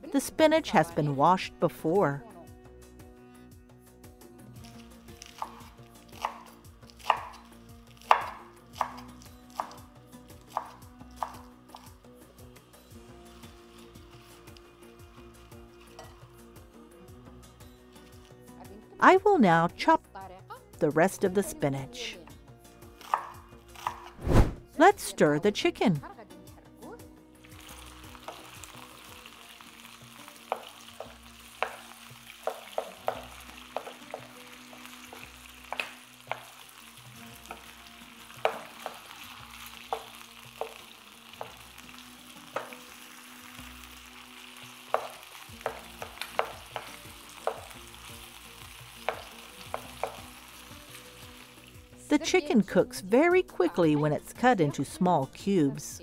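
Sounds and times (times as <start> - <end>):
chicken sizzling in oil: 4.4 - 18.8, 27.4 - 52.4.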